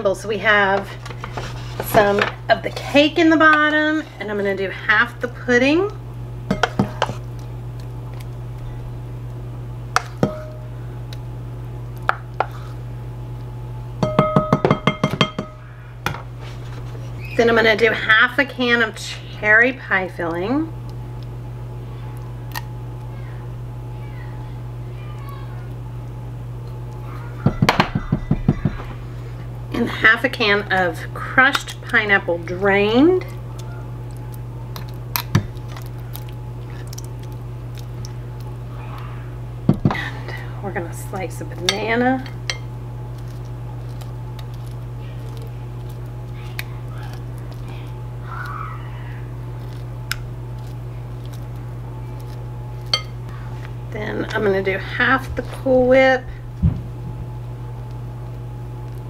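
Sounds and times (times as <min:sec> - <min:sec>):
steady low hum: 0:00.0 - 0:59.0
spoon knocking glass bowl: 0:10.2 - 0:10.6, 0:14.0 - 0:15.6.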